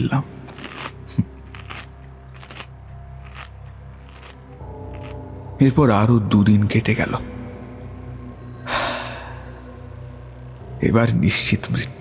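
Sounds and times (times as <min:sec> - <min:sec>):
low steady drone: 0:00.0 - 0:11.3.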